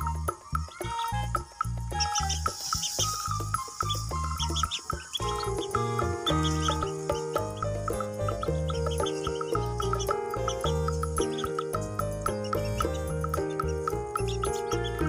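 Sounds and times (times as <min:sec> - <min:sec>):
background music with bass line: 0:00.0 - 0:15.0
ducklings peeping: 0:02.0 - 0:15.0.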